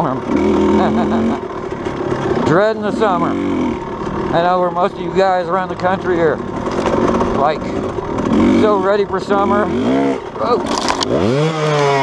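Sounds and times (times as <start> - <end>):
dirt bike engine running: 0.0 - 12.0.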